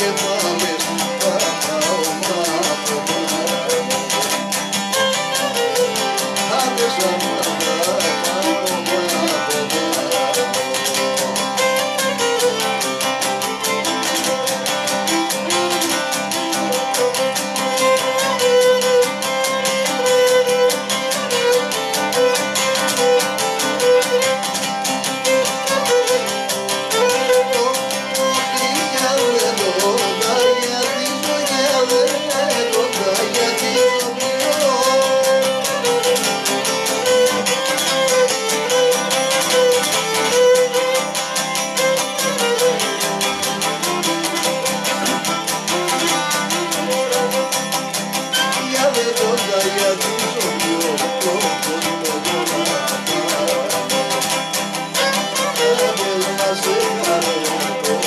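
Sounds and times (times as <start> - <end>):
bowed lyra melody: 0.0 - 58.0
lute strumming fast rhythm: 0.0 - 58.0.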